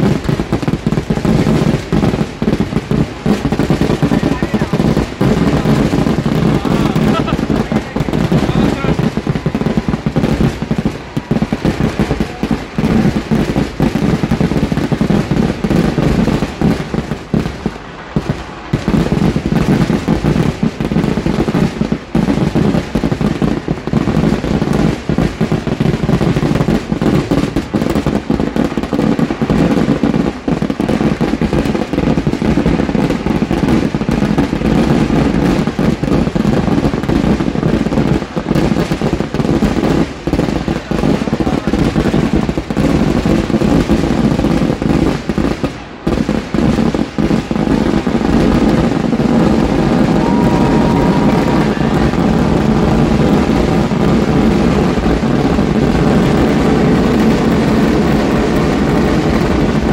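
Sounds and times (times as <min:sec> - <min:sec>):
fireworks exploding: 0:00.0 - 0:59.9.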